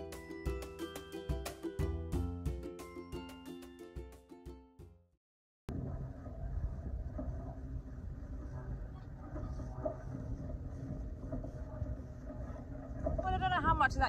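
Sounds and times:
wind buffeting microphone: 5.7 - 14.0
woman speaking: 13.2 - 14.0.

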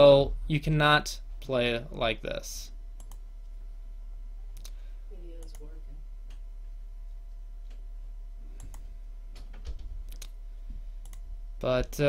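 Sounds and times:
steady low hum: 0.0 - 12.0
sharp computer clicks: 3.0 - 3.3, 4.6 - 5.8, 11.0 - 11.3.

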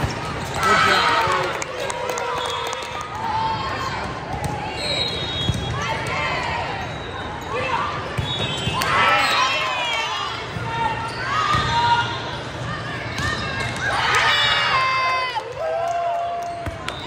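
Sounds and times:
crowd shouts and chatter: 0.0 - 17.0.

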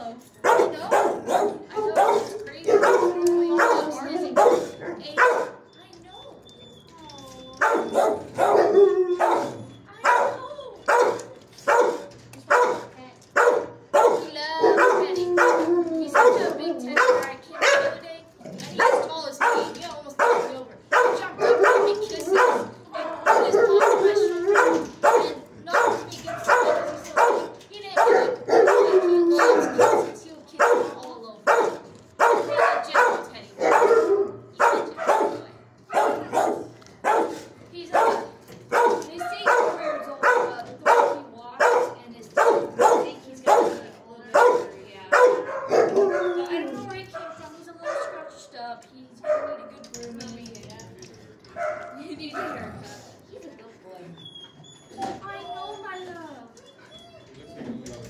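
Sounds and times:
dogs barking: 0.4 - 5.7, 7.6 - 48.5, 49.2 - 49.9, 51.5 - 53.1.

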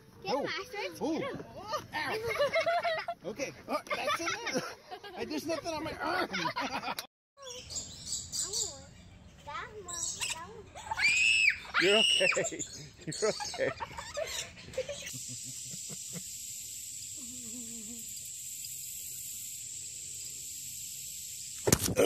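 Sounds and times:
loud laughter: 2.0 - 3.2, 11.8 - 16.3
excited voices: 10.3 - 15.1
high-pitched drone with hiss: 14.8 - 21.7.

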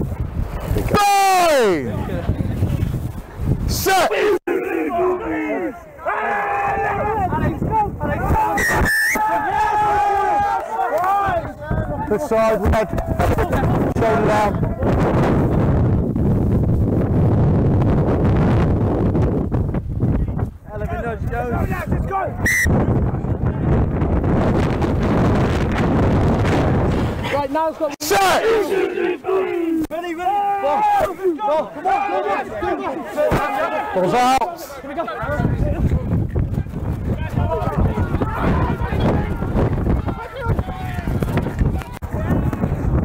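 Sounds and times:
wind buffeting microphone: 0.0 - 4.4, 5.2 - 27.9, 35.1 - 43.0
rugby players shouting: 3.7 - 14.6, 27.2 - 35.8, 37.2 - 41.1
shrill steady tone: 8.5 - 9.2, 22.5 - 22.7.

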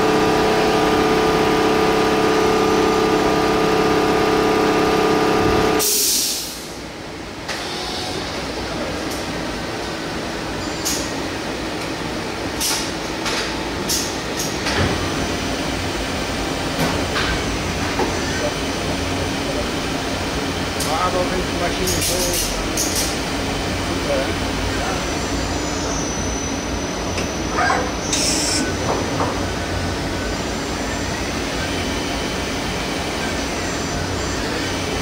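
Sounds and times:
lathe machine hum: 0.0 - 5.8.

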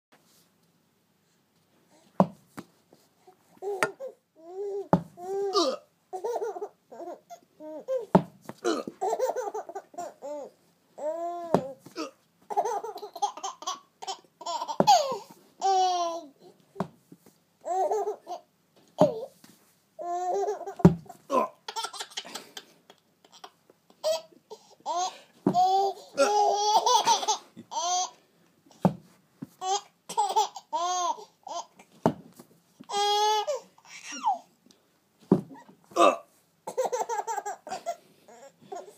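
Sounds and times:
baby laughing: 5.3 - 16.4, 17.6 - 19.3, 20.0 - 28.2, 29.6 - 31.9, 36.6 - 38.9
ball bouncing: 11.5 - 11.8, 20.8 - 21.1.

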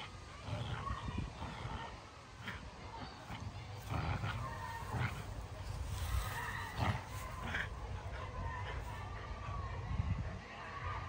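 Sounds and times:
dogs growling and snarling: 0.0 - 9.8.

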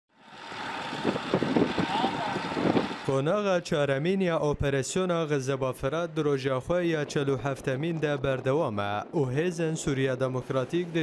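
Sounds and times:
trucks driving on dirt road: 0.1 - 11.0.

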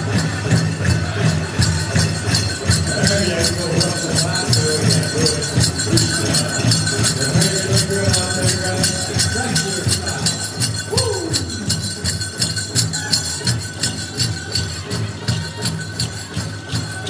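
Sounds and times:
bells and metal jingles shaking: 0.0 - 17.0
big drum steady beat: 0.0 - 17.0.

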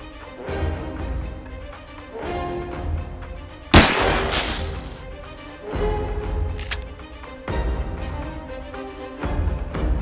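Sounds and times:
background music: 0.0 - 10.0
loud gunshot: 3.8 - 5.0.

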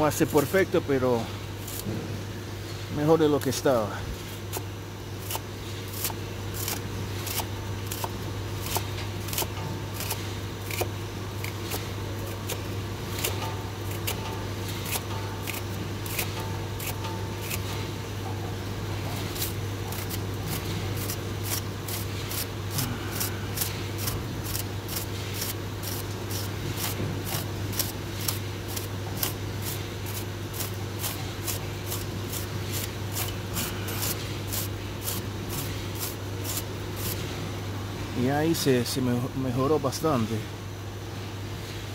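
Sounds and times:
low steady hum: 0.0 - 41.9.

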